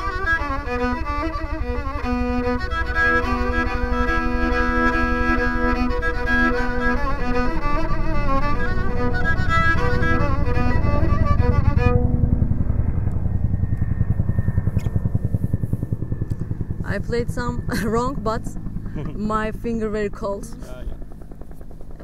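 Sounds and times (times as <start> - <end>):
bowed fiddle melody: 0.0 - 13.2
helicopter rumble: 0.0 - 22.0.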